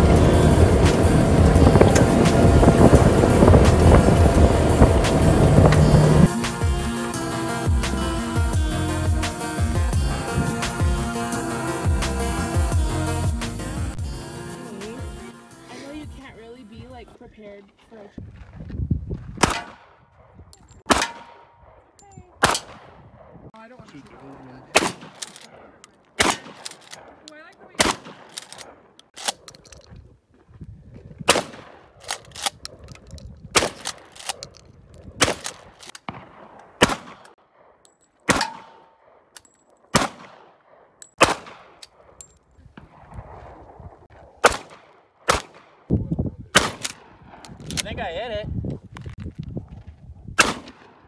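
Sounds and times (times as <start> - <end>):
gunshots with echo: 20.9 - 21.8, 22.4 - 23.4, 24.7 - 27.2, 36.0 - 42.2, 44.3 - 45.9.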